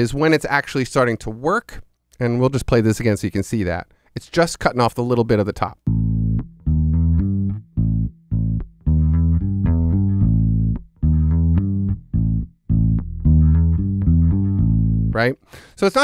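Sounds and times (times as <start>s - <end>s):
electric bass guitar notes: 5.9s - 15.3s.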